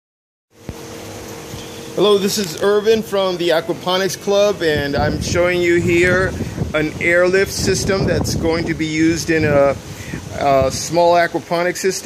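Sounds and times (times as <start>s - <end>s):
mechanical hum: 0.5s - 12.0s
light hiss: 0.6s - 4.8s, 9.6s - 11.3s.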